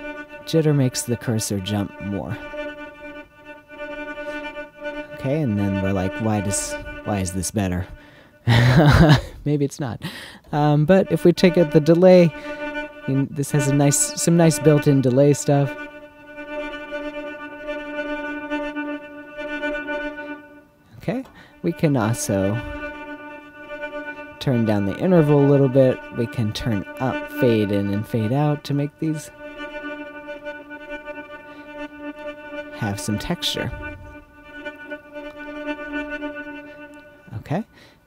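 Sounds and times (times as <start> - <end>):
synthesizer ambient pad note: 21.4 - 36.4.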